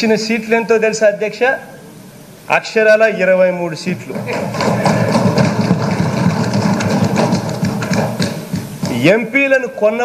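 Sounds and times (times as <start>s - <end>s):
people thumping desks: 4.0s - 9.3s.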